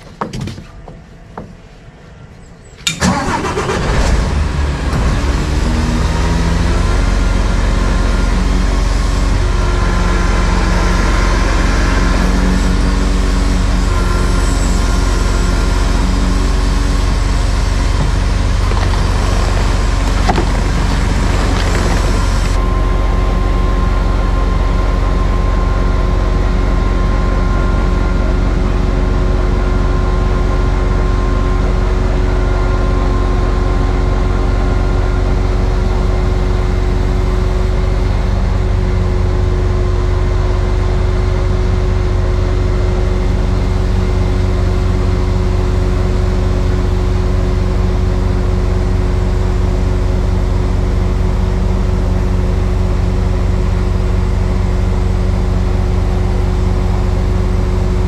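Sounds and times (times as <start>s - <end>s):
hydraulic whine: 1.1s - 58.0s
truck engine running: 2.8s - 58.0s.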